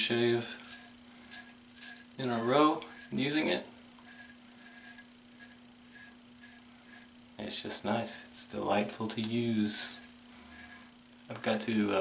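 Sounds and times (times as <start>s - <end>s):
razor scraping stubble: 0.5s - 7.2s, 8.8s - 11.9s.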